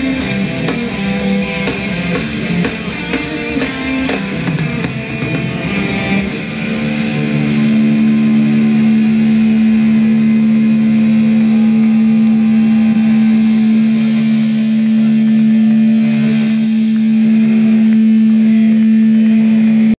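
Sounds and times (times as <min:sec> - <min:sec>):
distorted guitar amplifier drone: 0:00.0 - 0:19.9.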